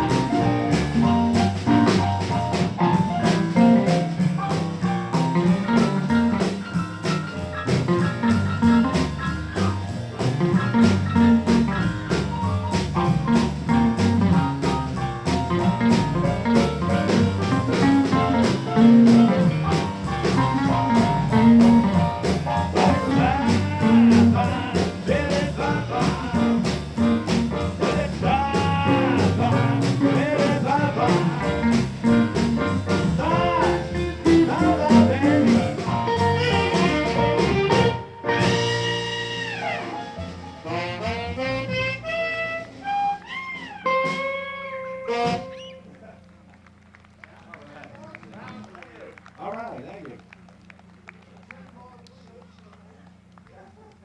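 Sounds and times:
live blues band playing: 0.0 - 49.4.

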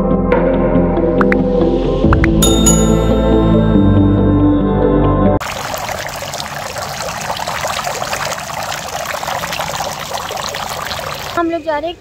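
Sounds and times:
fountain water trickling and splashing: 5.4 - 12.0.

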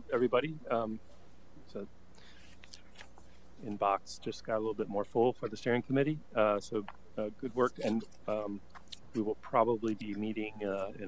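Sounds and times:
soft spoken word: 0.0 - 1.0, 3.6 - 11.0
faint soft noises: 0.0 - 11.0
low room hum: 0.0 - 11.0.

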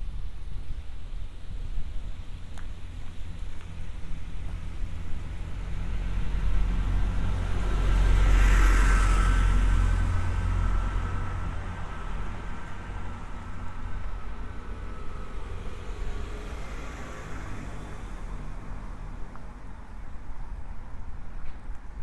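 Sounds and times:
car driving past: 5.3 - 19.6.

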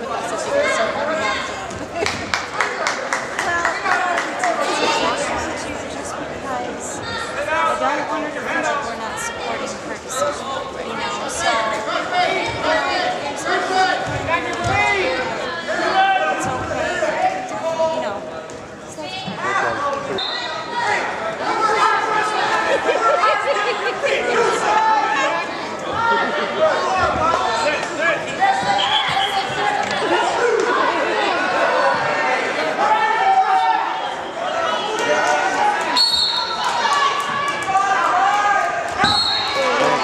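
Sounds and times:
spectators shouting and chattering: 0.0 - 40.0
referee's whistle blast: 36.0 - 36.6, 39.0 - 39.7.

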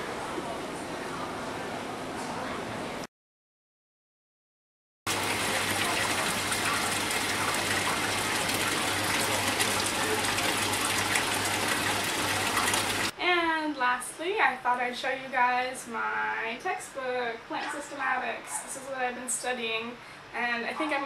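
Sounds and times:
water gushing and bubbling: 5.1 - 13.1
woman speaking: 13.1 - 21.0.

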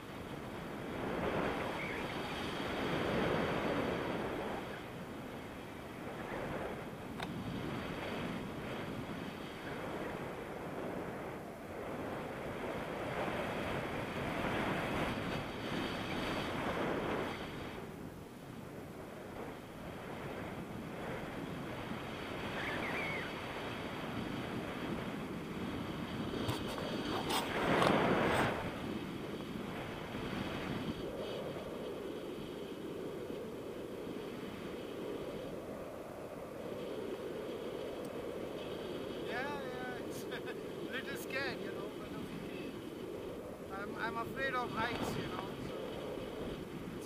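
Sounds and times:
wind rushing over microphone: 0.0 - 47.0.

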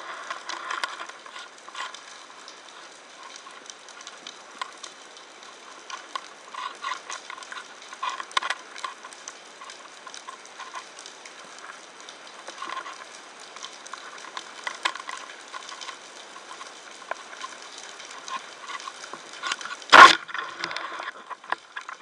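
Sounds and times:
underwater crackling clicks and pops: 0.1 - 22.0.

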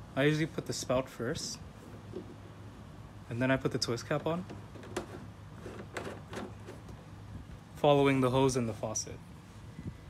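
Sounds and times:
plastic cap clicking and scraping: 4.5 - 7.0.

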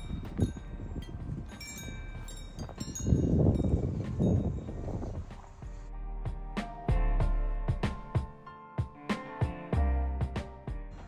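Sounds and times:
metal wind chimes ringing: 0.0 - 4.7
wind rumble on microphone: 0.0 - 5.9
background music: 3.9 - 11.0.

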